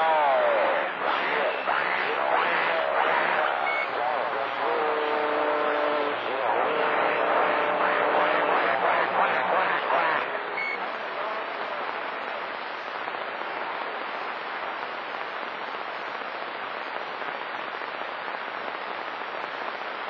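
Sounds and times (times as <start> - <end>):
distant radio voices: 0.0 - 18.0
radio static hiss: 0.0 - 20.0
steady radio tone: 0.0 - 20.0.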